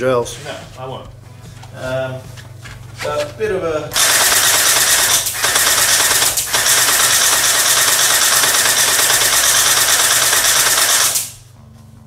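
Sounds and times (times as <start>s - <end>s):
toy blaster firing full-auto: 4.0s - 11.4s.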